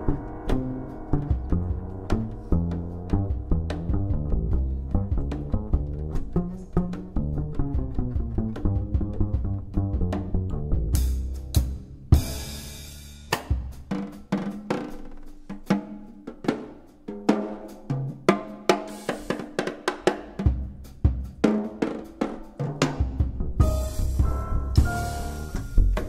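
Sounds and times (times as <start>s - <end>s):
cymbal crash ringing: 0.0s - 2.8s
jazz drum solo: 0.0s - 26.0s.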